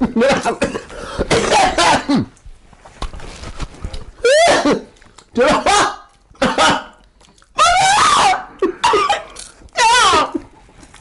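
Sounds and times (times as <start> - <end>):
person coughing: 0.2 - 2.4, 4.3 - 7.0, 8.6 - 9.4
person crying out in disgust: 4.2 - 5.9, 7.6 - 10.5.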